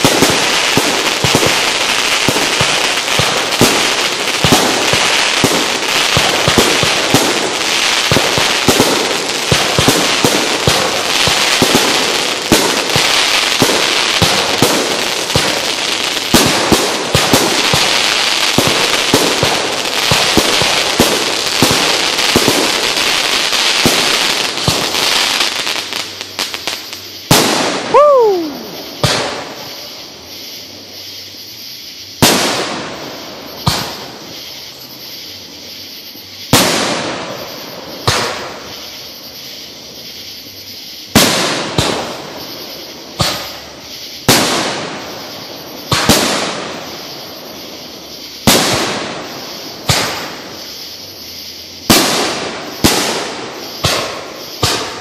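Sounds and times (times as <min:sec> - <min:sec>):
falling firework whistle: 0:00.0 - 0:55.0
fireworks booms echoing: 0:00.0 - 0:55.0
fireworks crackling and popping: 0:00.0 - 0:55.0.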